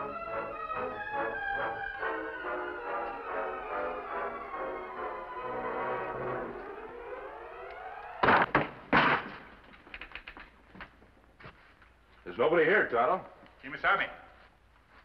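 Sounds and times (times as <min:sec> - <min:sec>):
orchestral music: 0:00.0 - 0:08.5
wooden door kicked open: 0:08.2 - 0:09.5.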